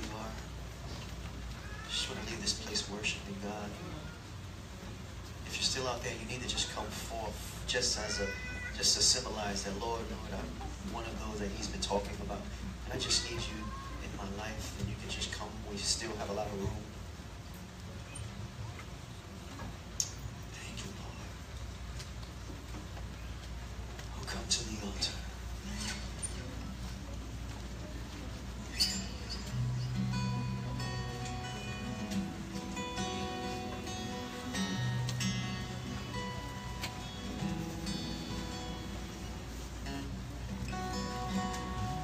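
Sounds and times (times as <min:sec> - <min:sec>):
high crying voice: 0:01.5 - 0:02.0, 0:08.1 - 0:08.8
people speaking or praying aloud: 0:05.4 - 0:17.0.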